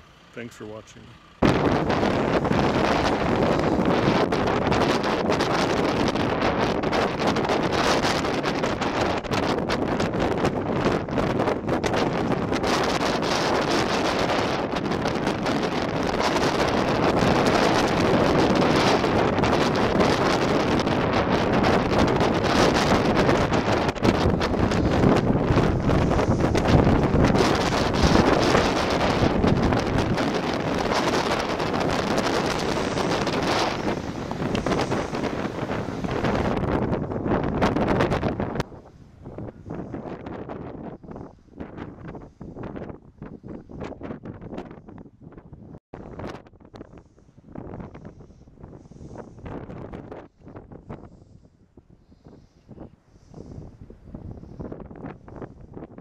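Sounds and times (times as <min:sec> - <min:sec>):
wind buffeting microphone: 0:01.3 - 0:56.0.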